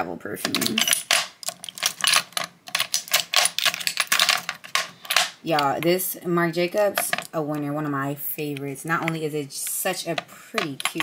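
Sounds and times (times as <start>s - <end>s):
glass bottles clinking: 0.5s - 5.4s.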